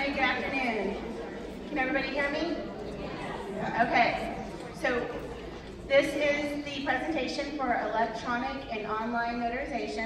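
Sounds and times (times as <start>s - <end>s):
woman speaking: 0.0s - 1.0s, 1.7s - 2.6s, 3.7s - 5.1s, 5.9s - 10.0s
murmured chatter in a hall: 0.0s - 10.0s.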